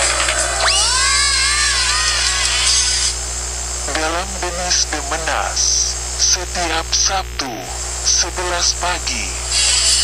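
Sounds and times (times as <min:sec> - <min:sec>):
low mains hum: 0:00.0 - 0:10.0.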